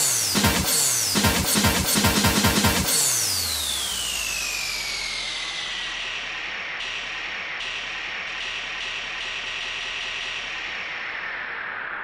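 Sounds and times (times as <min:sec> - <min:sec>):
white-noise sweep falling in pitch: 0:00.0 - 0:12.0.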